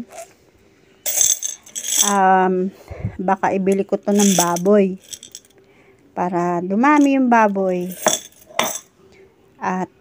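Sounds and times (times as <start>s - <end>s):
coins rattling in ceramic bank: 1.1s - 2.4s, 3.7s - 5.5s, 6.9s - 8.9s.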